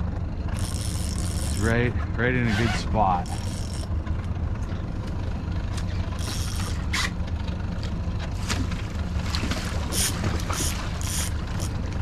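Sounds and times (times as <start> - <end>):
outboard motor rumbling: 0.0 - 12.0.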